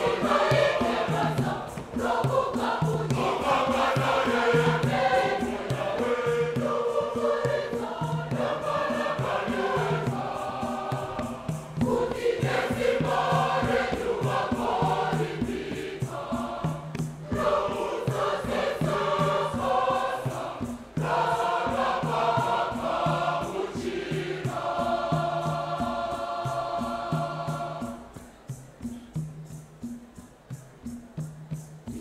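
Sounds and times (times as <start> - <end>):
choir singing a hymn: 0.0 - 29.9
steady rhythmic pulse: 0.0 - 32.0.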